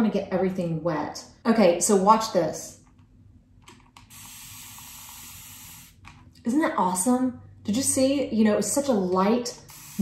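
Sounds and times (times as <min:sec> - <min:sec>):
spray bottle hissing mist: 0:04.1 - 0:06.0, 0:09.6 - 0:10.0.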